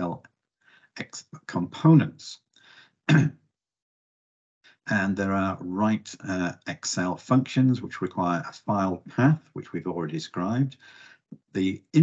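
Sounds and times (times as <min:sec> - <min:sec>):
man coughing: 0:03.1 - 0:03.3.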